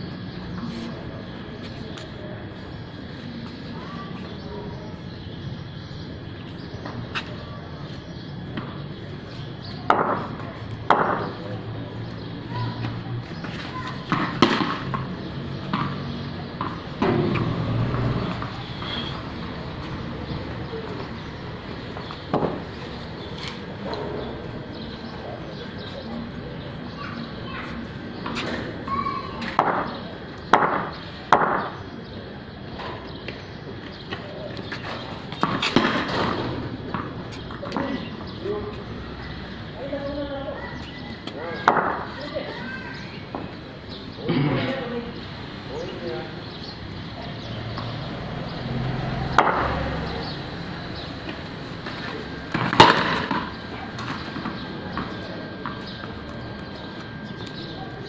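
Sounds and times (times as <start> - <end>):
tennis ball knocking: 14.1 - 16.0, 51.3 - 53.6.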